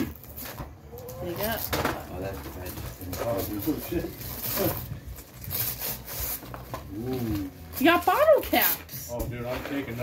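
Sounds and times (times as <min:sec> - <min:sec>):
candy box packaging rustling: 0:00.0 - 0:10.0.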